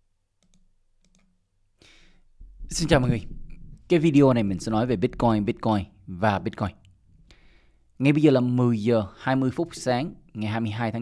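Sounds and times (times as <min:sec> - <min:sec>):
faint computer mouse clicks: 0:00.4 - 0:01.3.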